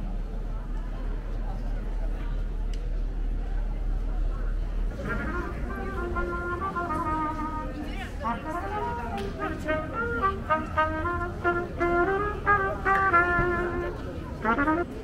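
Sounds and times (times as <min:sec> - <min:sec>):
people talking: 0:00.0 - 0:15.0
solo trumpet melody: 0:04.9 - 0:15.0.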